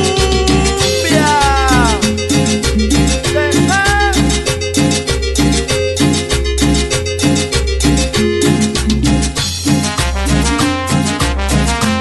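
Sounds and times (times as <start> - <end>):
instrumental cumbia dance music: 0.0 - 12.0.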